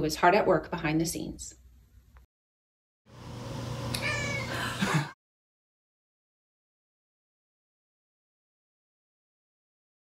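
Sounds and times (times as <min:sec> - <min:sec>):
cat meowing: 0:04.0 - 0:04.6.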